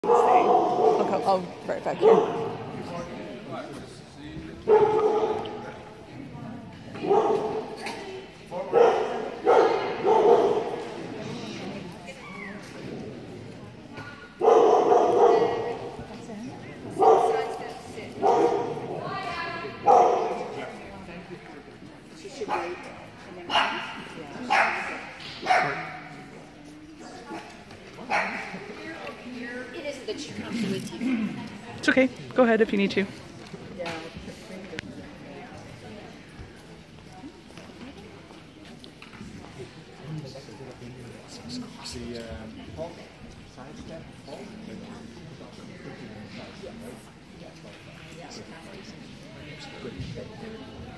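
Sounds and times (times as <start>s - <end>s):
dog barking with echo: 0.0s - 1.2s, 2.0s - 2.6s, 4.7s - 5.6s, 7.0s - 7.7s, 8.7s - 10.8s, 14.4s - 15.8s, 17.0s - 17.5s, 18.2s - 18.9s, 19.8s - 20.6s, 23.5s - 26.0s.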